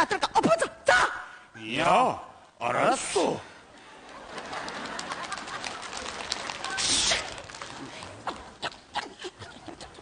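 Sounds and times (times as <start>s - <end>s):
audience laughing: 3.8s - 6.4s.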